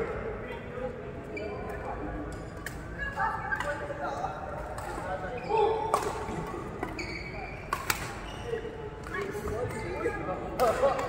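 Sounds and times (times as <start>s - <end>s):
rackets hitting shuttlecock: 7.7s - 8.2s.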